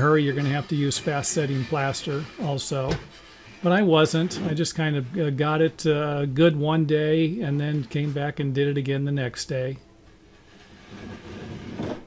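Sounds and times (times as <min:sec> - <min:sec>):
straight edge scraping drywall: 0:00.0 - 0:04.6, 0:10.3 - 0:12.0.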